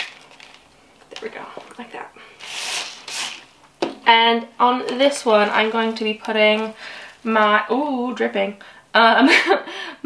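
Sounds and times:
scratchy rubbing of mesh pole: 2.4s - 3.4s.

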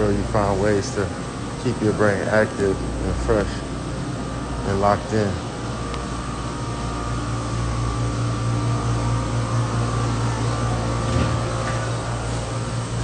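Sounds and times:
machine hum with whining tones: 0.0s - 13.0s.

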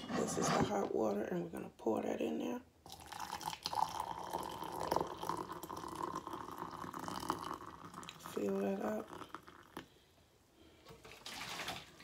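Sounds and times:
water pouring into mug: 2.9s - 9.9s.

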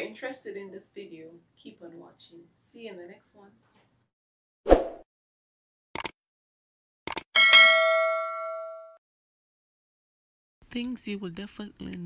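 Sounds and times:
bell ding: 7.4s - 9.0s.

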